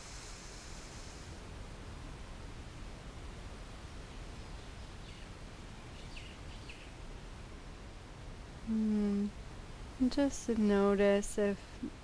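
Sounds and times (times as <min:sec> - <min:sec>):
faint outdoor background noise: 0:00.0 - 0:12.0
soft bird chirps: 0:05.9 - 0:07.0
woman humming: 0:08.6 - 0:09.4.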